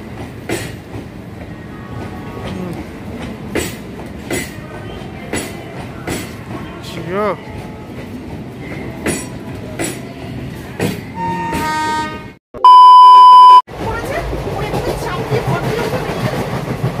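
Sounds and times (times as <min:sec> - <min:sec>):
passengers talking: 0:00.0 - 0:12.0, 0:13.7 - 0:17.0
train running noise: 0:00.0 - 0:12.4, 0:13.7 - 0:17.0
loud test tone beep: 0:12.6 - 0:13.6
short pitched tone: 0:12.6 - 0:13.6.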